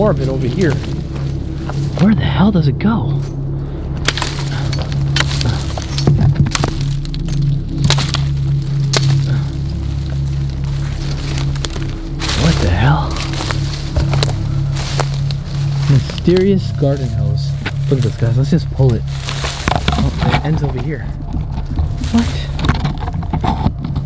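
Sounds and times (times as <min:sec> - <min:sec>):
low background music drone: 0:00.0 - 0:24.0
twigs cracking underfoot: 0:00.0 - 0:24.0.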